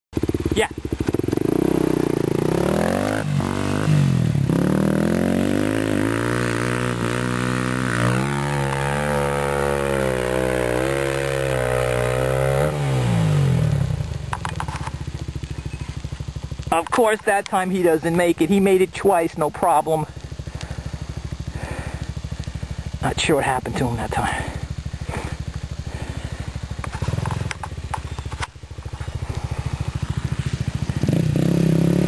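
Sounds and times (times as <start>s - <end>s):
motorcycle engine revving: 0.2s - 32.0s.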